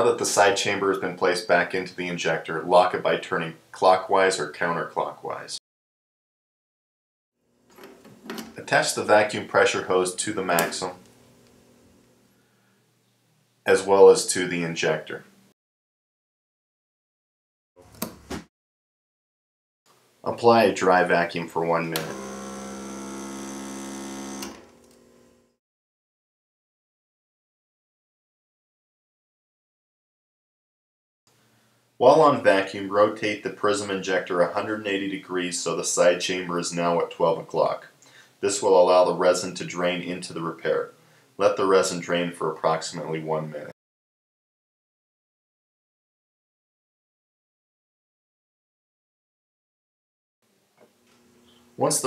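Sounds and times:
vacuum pump humming: 0:22.0 - 0:25.6.

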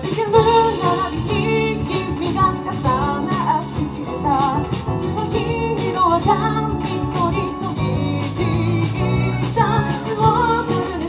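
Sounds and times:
live band with singing: 0:00.0 - 0:11.0.

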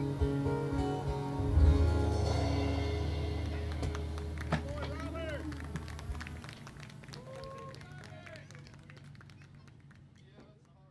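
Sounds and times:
low hum: 0:00.9 - 0:07.2
audience voices: 0:01.6 - 0:09.9
audience clapping: 0:03.4 - 0:10.9.

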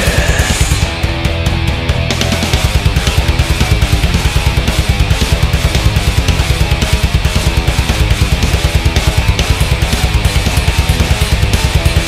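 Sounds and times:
death metal music: 0:00.0 - 0:12.0.

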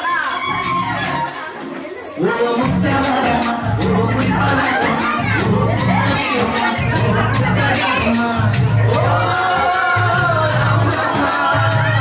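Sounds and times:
crowd shouting and cheering: 0:00.0 - 0:12.0
dance music with beat: 0:02.2 - 0:12.0.

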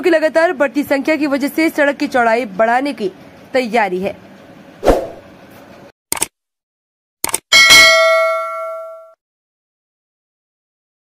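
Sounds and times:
short clicks: 0:06.1 - 0:06.4, 0:07.2 - 0:07.4
bright bell ding: 0:07.5 - 0:09.2.

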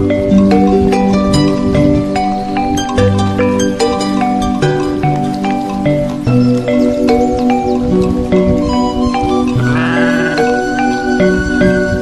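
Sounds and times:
background music: 0:00.0 - 0:12.0
sheep bleating: 0:09.6 - 0:10.6.

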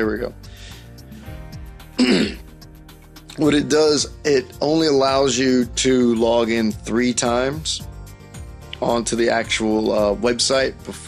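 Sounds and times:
background music: 0:00.0 - 0:11.0
man clearing his throat: 0:02.0 - 0:02.5.

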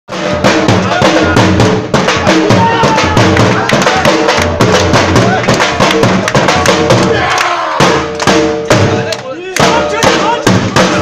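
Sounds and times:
barrel drum beaten with sticks: 0:00.1 - 0:11.0.

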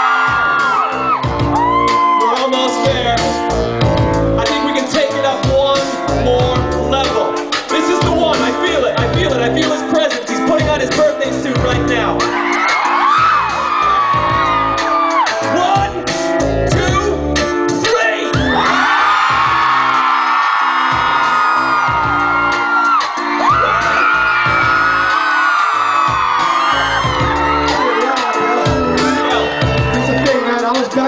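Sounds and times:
fans whooping and screaming: 0:00.0 - 0:03.4, 0:11.8 - 0:15.8, 0:18.3 - 0:31.0
loud live band music: 0:00.0 - 0:31.0.

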